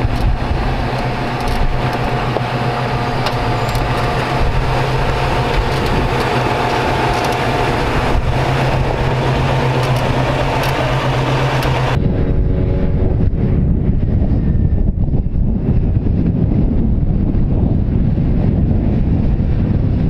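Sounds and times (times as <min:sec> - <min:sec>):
sharp clicks: 0:00.0 - 0:02.5, 0:03.1 - 0:12.0
engine running at low revs: 0:00.0 - 0:20.0
wind rumble on microphone: 0:00.0 - 0:20.0.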